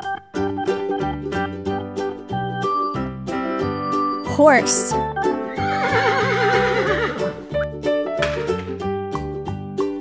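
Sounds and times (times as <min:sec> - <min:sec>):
background music: 0:00.0 - 0:10.0
horse whinnying: 0:05.5 - 0:07.4.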